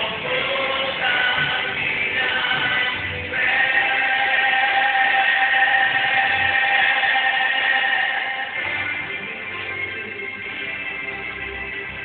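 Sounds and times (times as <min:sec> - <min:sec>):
man singing gospel: 0:00.0 - 0:08.6
backing music: 0:00.0 - 0:12.0.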